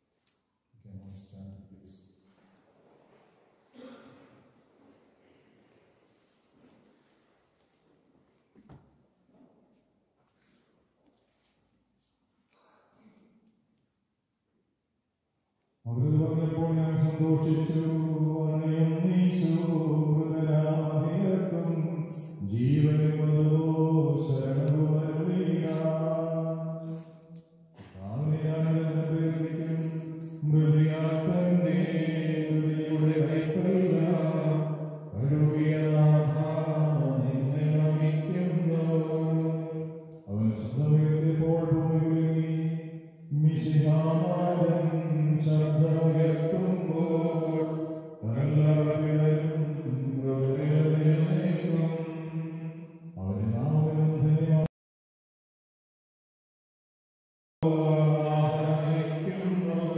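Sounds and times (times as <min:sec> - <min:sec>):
man chanting into microphone: 0:15.9 - 0:54.7, 0:57.6 - 0:59.9.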